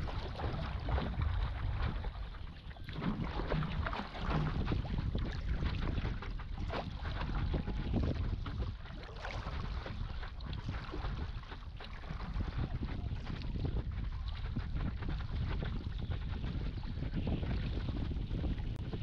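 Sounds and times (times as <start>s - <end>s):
water splashing: 0.0s - 14.4s
wind rumbling on microphone: 0.0s - 19.0s.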